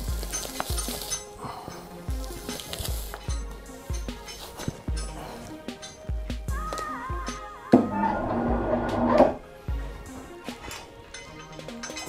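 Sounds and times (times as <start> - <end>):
music with gliding melody: 0.0 - 12.0.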